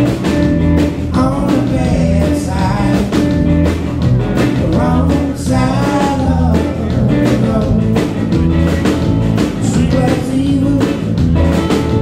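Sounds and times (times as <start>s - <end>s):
bass guitar: 0.0s - 12.0s
drum beat: 0.0s - 12.0s
electric guitar: 0.0s - 12.0s
man singing: 1.0s - 3.5s, 4.4s - 8.3s, 9.6s - 11.3s.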